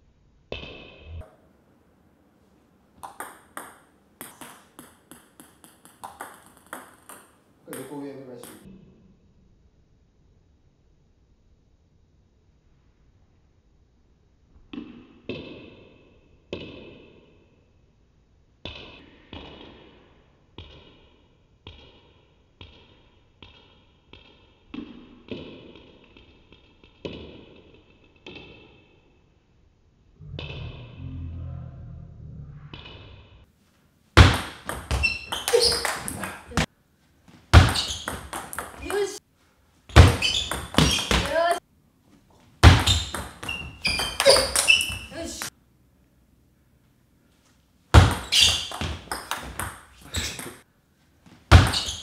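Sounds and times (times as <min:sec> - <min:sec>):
table tennis ball clicks: 0:03.0 - 0:08.6, 0:34.3 - 0:36.6.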